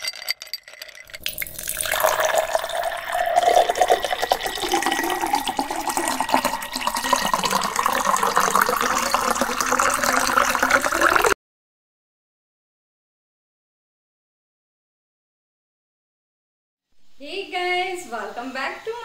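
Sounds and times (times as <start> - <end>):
light glass clinks: 0.0 - 3.9
smoothie pouring into glass: 0.7 - 11.4.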